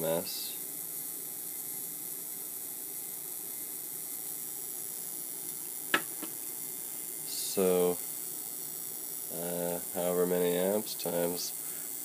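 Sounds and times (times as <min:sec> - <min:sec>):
high-pitched hiss: 0:00.0 - 0:04.3, 0:05.4 - 0:12.0.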